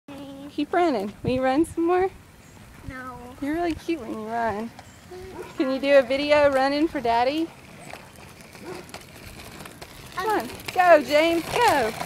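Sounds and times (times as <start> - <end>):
quiet street ambience: 0.1 - 12.0.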